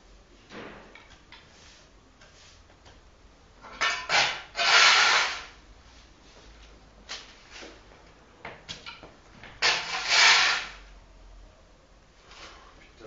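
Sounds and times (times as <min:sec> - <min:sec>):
broom sweeping concrete floor: 0:01.4 - 0:02.8, 0:03.8 - 0:07.8, 0:09.6 - 0:10.8.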